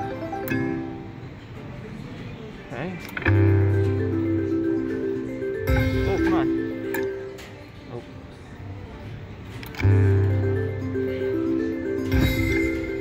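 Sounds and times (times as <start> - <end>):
slot machine chime tune: 3.3 - 7.3, 9.8 - 13.0.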